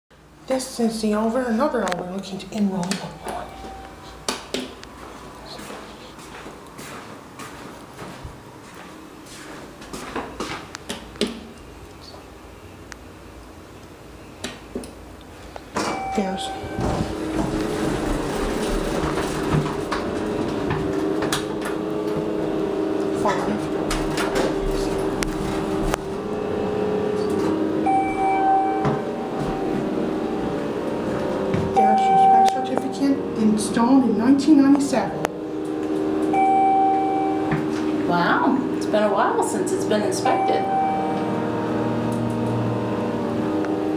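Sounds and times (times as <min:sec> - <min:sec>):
low hum in elevator: 0:00.2 - 0:43.9
elevator signal tone: 0:03.1 - 0:04.2, 0:15.8 - 0:18.2, 0:26.1 - 0:33.5, 0:36.0 - 0:43.9.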